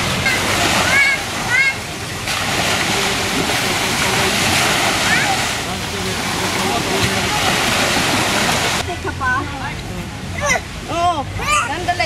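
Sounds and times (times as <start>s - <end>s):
small waves washing: 0.0s - 12.0s
people talking: 0.2s - 12.0s.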